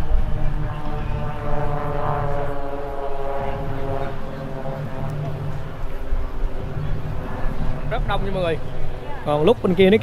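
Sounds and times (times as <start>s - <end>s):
aircraft engine droning: 0.0s - 10.0s
wind rumble on microphone: 0.0s - 10.0s.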